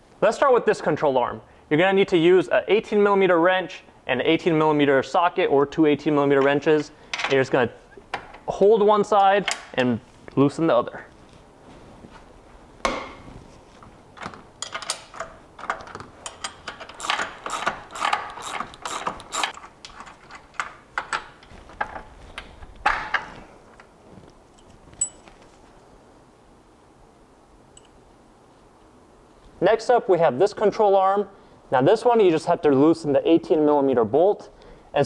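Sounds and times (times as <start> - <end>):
socket ratchet clicking: 14.6 - 19.6
metal tools clinking: 14.6 - 22.0, 24.5 - 25.5.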